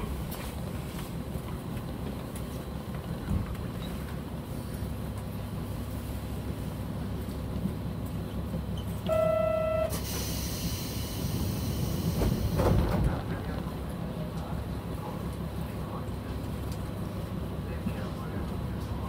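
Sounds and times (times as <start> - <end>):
diesel railcar idling: 0.0 - 19.0
short steady tone: 9.0 - 11.1.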